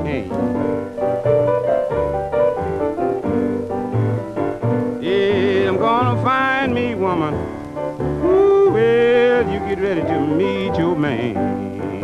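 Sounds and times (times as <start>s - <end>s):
blues piano playing: 0.0s - 12.0s
guitar: 0.0s - 12.0s
string bass: 0.0s - 12.0s.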